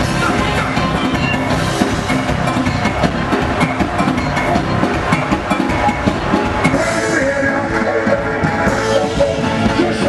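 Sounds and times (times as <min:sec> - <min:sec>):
electric guitar: 0:00.0 - 0:10.0
live band playing: 0:00.0 - 0:10.0
steady drum beat: 0:00.0 - 0:10.0.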